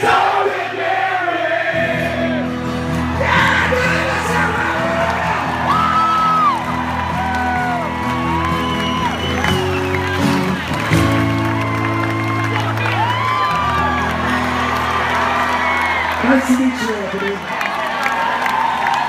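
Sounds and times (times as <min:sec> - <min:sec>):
rock band playing live: 0:01.8 - 0:17.0
crowd whooping and cheering: 0:01.9 - 0:19.0.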